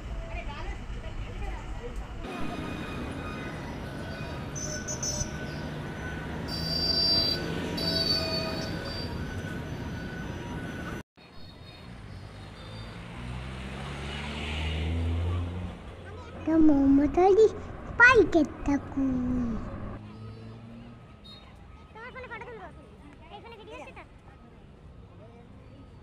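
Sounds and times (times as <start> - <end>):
city street traffic: 0.0 - 26.0
vehicle engine rising in pitch: 12.5 - 20.9.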